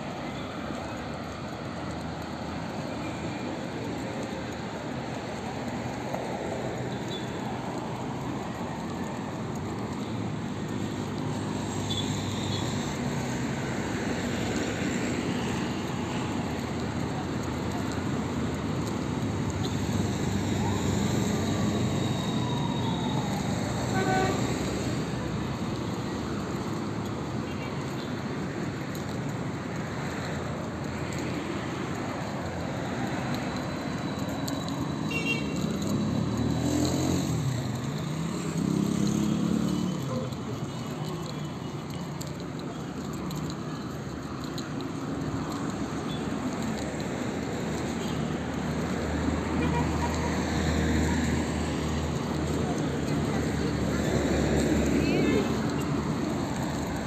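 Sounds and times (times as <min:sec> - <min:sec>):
street traffic: 0:00.0 - 0:57.0
people's voices: 0:52.4 - 0:56.8.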